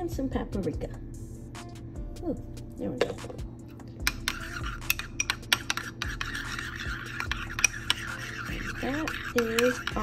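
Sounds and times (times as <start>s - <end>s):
spoon clinking and scraping bowl: 3.7s - 10.0s.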